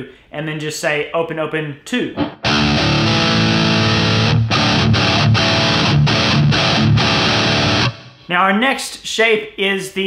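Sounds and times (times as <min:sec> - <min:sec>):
distorted electric guitar metal riff: 0:02.2 - 0:08.3.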